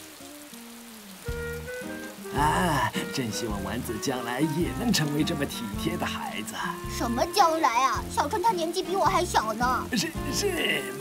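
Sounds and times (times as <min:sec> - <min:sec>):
rain pattering: 0:00.0 - 0:11.0
soft music of held notes: 0:00.0 - 0:11.0.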